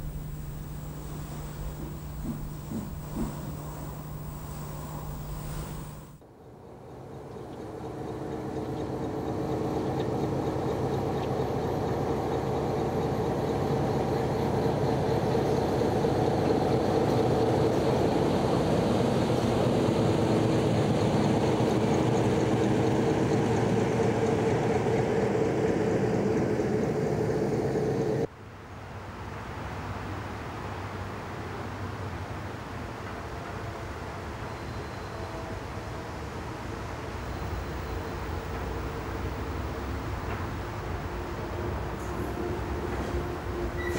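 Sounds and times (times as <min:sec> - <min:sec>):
steady tones: 0:00.0 - 0:06.2
steady background noise: 0:00.0 - 0:43.9
train wheels rumbling on track: 0:35.2 - 0:43.9.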